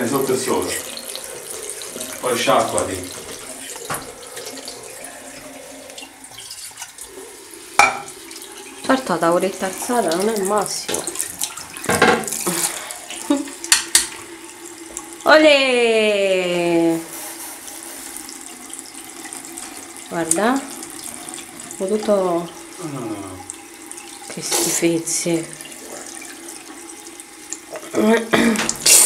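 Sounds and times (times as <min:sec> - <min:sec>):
water splashing into a basin: 0:00.0 - 0:15.4, 0:17.0 - 0:29.0
water running from a tap: 0:00.0 - 0:29.0
tap running into sink: 0:01.8 - 0:04.9, 0:07.8 - 0:09.0, 0:09.7 - 0:12.7, 0:13.3 - 0:15.1.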